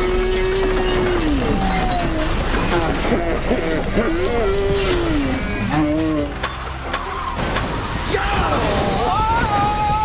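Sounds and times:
music: 0:00.0 - 0:10.0
people shouting: 0:03.7 - 0:10.0
sharp cracks: 0:06.3 - 0:10.0.

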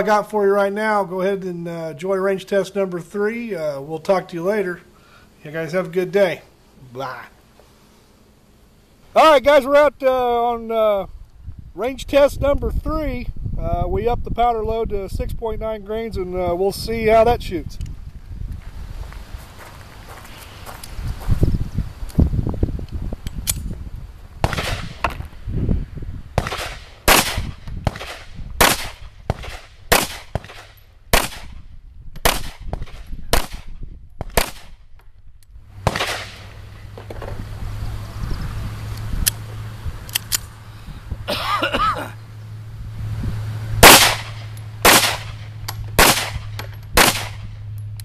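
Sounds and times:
pistol shots: 0:24.4 - 0:25.2, 0:26.4 - 0:31.6, 0:32.2 - 0:34.8, 0:35.8 - 0:36.6, 0:43.8 - 0:47.5.

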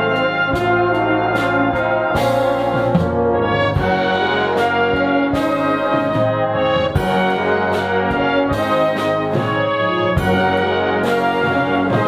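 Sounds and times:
brass band playing chords: 0:00.0 - 0:12.0.

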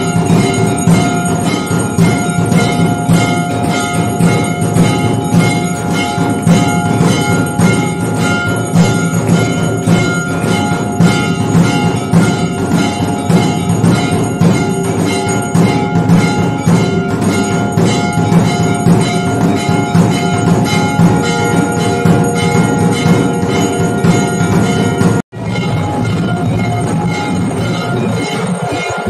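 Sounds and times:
drum beats: 0:00.0 - 0:29.0
temple bells ringing: 0:00.0 - 0:29.0.

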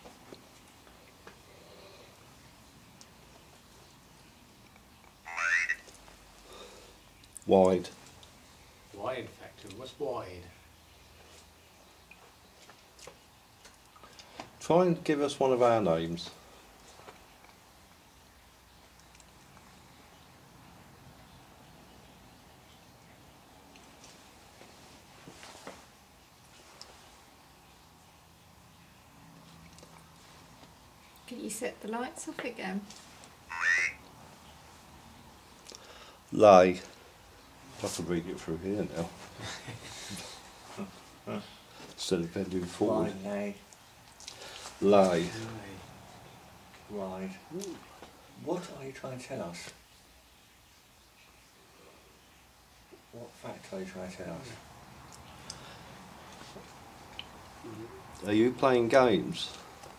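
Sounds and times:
robotic synthesized voice word: 0:05.2 - 0:05.8, 0:33.5 - 0:34.0.

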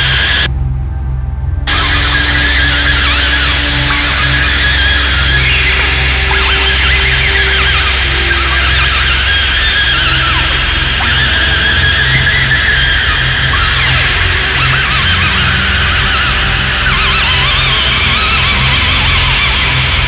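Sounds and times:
squealing high glides: 0:00.0 - 0:00.5, 0:01.7 - 0:20.0
deep pulsing drone: 0:00.0 - 0:20.0
long held synth tones: 0:00.0 - 0:20.0.

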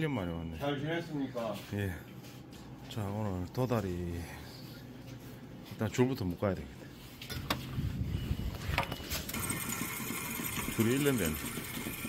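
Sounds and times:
line spooling machine whirring: 0:09.3 - 0:12.0.

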